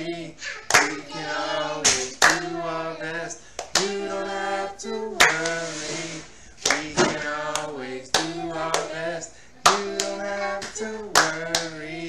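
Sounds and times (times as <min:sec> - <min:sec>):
voices singing slow song: 0:00.0 - 0:12.0
hands clapping: 0:00.7 - 0:01.0, 0:01.9 - 0:02.5, 0:03.6 - 0:04.0, 0:05.2 - 0:05.6, 0:06.6 - 0:08.9, 0:09.6 - 0:11.8.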